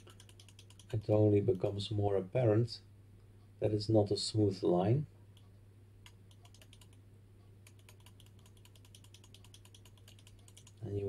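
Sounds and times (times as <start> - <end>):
computer mouse clicks: 0.0 - 1.1, 5.4 - 7.0, 7.6 - 10.8.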